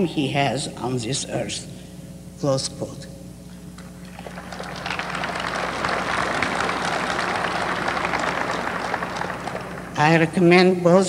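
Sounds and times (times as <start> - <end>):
audience applauding: 4.0 - 10.3.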